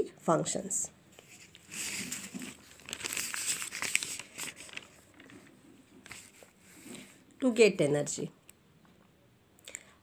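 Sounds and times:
notebook pages turning: 1.2s - 7.1s.

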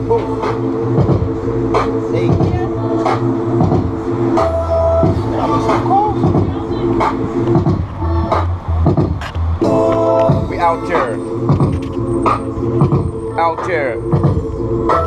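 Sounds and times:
hip-hop beat from boombox: 0.0s - 15.0s.

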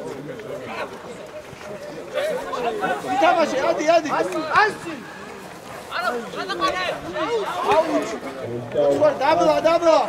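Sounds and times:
people calling and shouting: 0.0s - 10.0s.

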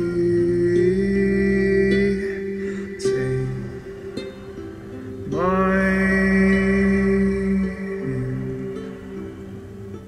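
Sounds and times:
person singing wordless note: 5.2s - 9.2s.

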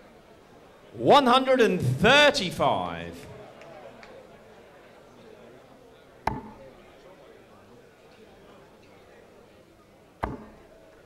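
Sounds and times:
dart hitting dartboard: 6.3s - 6.6s, 10.2s - 10.6s.

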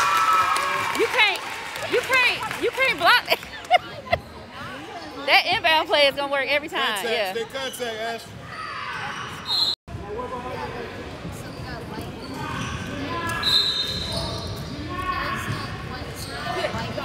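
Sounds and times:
spectators talking: 1.0s - 8.4s.

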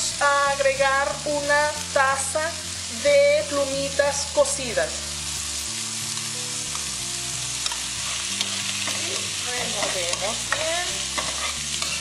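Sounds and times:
onion frying in oil: 0.0s - 12.0s
spoon scraping and squeaking on pan: 7.6s - 12.0s.

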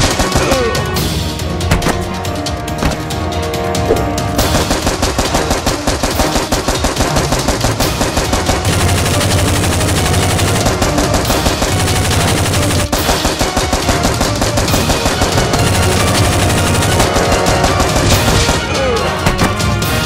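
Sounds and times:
automatic gunfire: 0.0s - 0.8s, 4.4s - 19.7s
background music: 0.0s - 20.0s.

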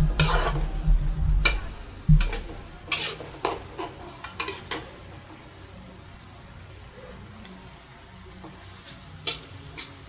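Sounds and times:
metal spatula scraping a wok: 0.0s - 5.0s, 8.5s - 10.0s.

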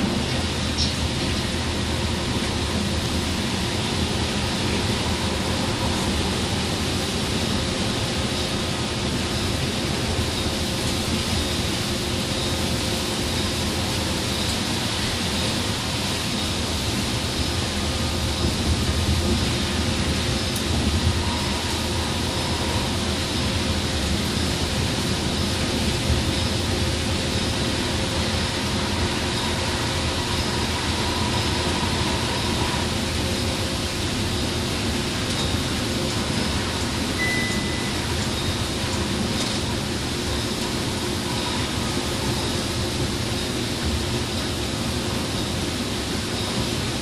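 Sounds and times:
coach engine drone: 0.0s - 46.9s
faint high tone: 37.2s - 38.0s.

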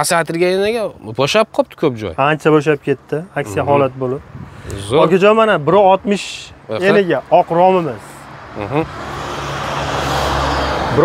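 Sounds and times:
vehicle engine and tyre noise: 3.7s - 11.0s.

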